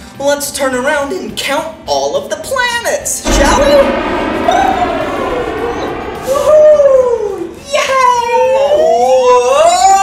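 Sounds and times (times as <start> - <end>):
gliding tone: 3.2 - 7.8
steady rushing noise: 3.2 - 8.1.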